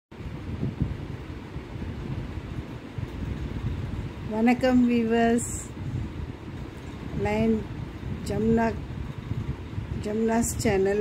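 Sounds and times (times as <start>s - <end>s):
low steady rumbling: 0.1s - 11.0s.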